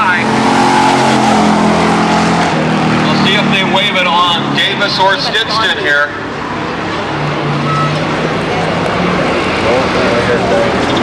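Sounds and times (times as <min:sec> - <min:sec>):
race truck engines: 0:00.0 - 0:11.0.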